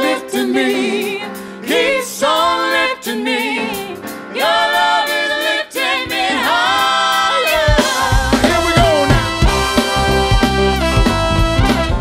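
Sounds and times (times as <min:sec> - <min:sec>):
soul singers in harmony: 0:00.0 - 0:09.2
woman singing lead: 0:02.0 - 0:09.1.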